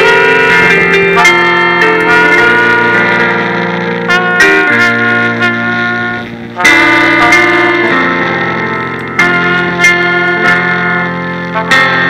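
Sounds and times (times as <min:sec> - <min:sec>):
brass band sustained chords: 0:00.0 - 0:12.0.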